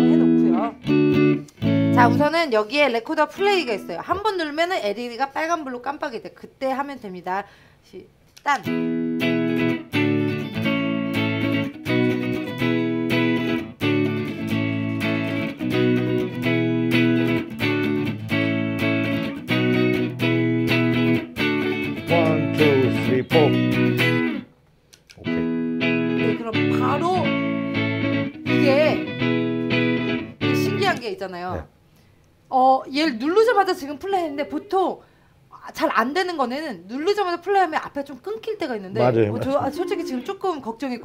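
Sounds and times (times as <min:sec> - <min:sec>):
electric guitar strumming chords: 0:00.0 - 0:02.3, 0:03.4 - 0:04.2, 0:08.6 - 0:24.5, 0:25.2 - 0:31.2, 0:39.0 - 0:40.3.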